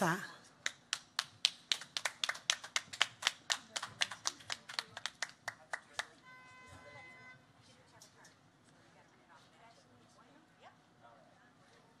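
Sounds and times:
person clapping: 0:00.6 - 0:06.1.

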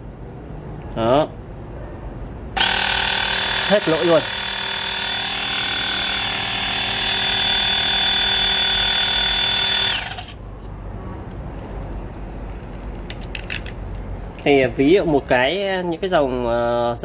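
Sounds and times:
air pump whining: 0:02.6 - 0:10.4.

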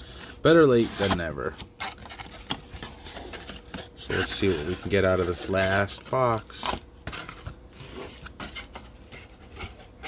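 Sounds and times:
cardboard rustling and scraping: 0:00.0 - 0:10.0.

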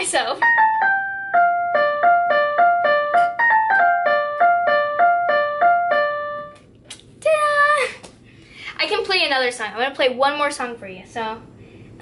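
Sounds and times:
electronic keyboard melody: 0:00.4 - 0:06.6
girl's voice: 0:07.2 - 0:08.1.

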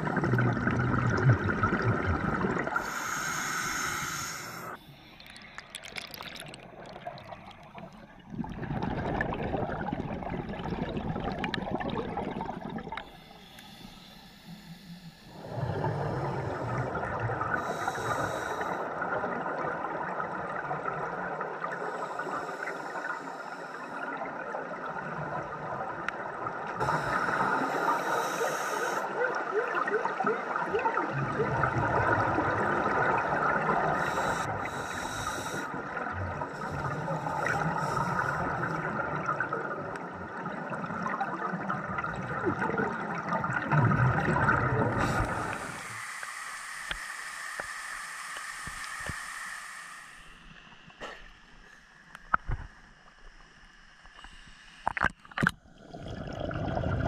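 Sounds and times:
gurgling water and bubbles: 0:00.0 - 0:57.0
diver breathing through regulator: 0:02.7 - 0:05.6, 0:13.0 - 0:18.9, 0:26.8 - 0:29.1, 0:33.8 - 0:38.9, 0:44.9 - 0:51.3.

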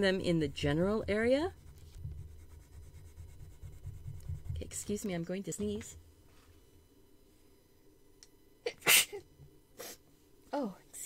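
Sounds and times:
woman sneezing: 0:08.6 - 0:09.2.

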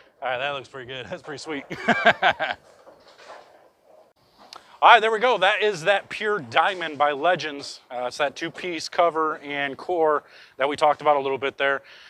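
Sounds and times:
faint background noise: 0:00.0 - 0:12.0
man laughing: 0:01.6 - 0:02.6.

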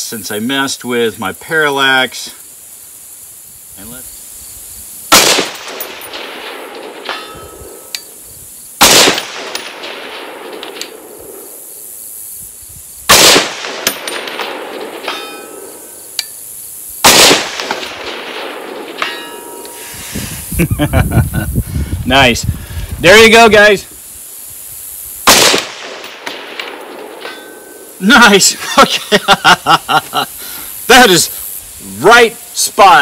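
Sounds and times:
rifle shots: 0:05.1 - 0:07.9, 0:08.8 - 0:11.6, 0:13.1 - 0:15.9, 0:17.0 - 0:19.1, 0:25.2 - 0:27.4
distant steel target ringing: 0:05.6 - 0:07.9, 0:13.7 - 0:16.0, 0:17.6 - 0:19.9.

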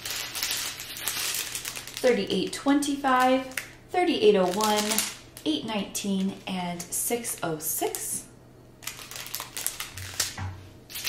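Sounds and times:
small beads rattling in bags: 0:00.0 - 0:02.2, 0:04.4 - 0:05.2, 0:08.8 - 0:10.3
plastic bags crinkling: 0:00.0 - 0:05.5, 0:08.8 - 0:11.0.

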